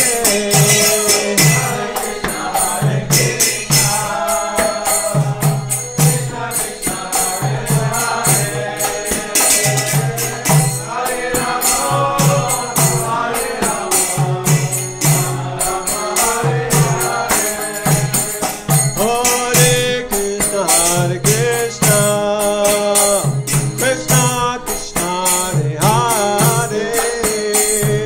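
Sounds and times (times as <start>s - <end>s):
hand drum: 0.0s - 28.0s
small hand cymbals: 0.0s - 28.0s
voices chanting a mantra: 0.0s - 28.0s.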